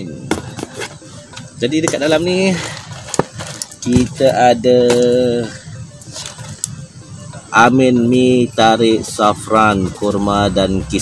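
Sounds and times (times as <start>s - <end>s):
soft background music: 0.0s - 11.0s.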